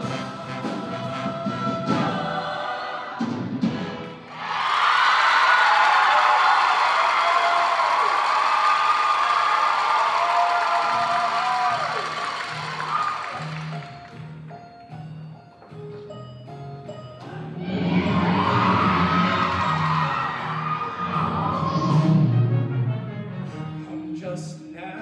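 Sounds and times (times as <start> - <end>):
choir singing: 0.0 - 4.6, 17.5 - 22.7.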